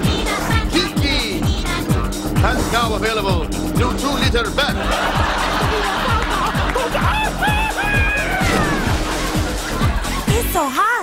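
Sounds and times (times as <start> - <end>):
kick drum beat: 0.0 - 10.5
upbeat jingle music: 0.0 - 11.0.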